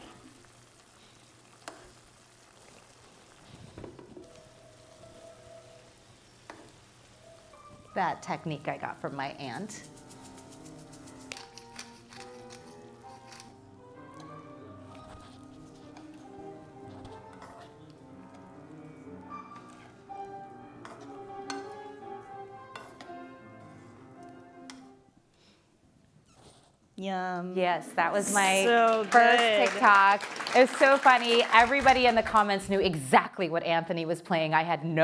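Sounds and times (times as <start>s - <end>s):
piano playing: 4.2s - 25.2s
spoon clinking on frying pan: 20.8s - 21.8s, 22.7s - 23.1s.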